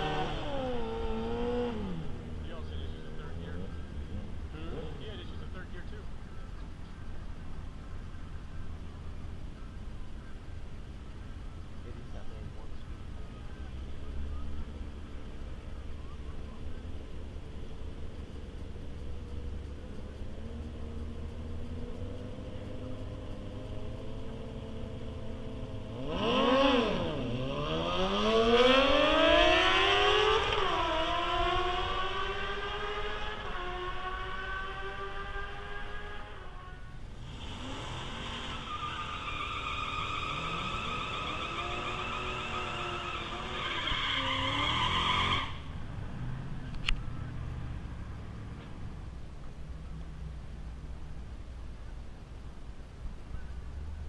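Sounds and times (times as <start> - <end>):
engine revving high: 0.0 - 6.0, 19.2 - 48.6
drag racer accelerating: 0.0 - 51.0.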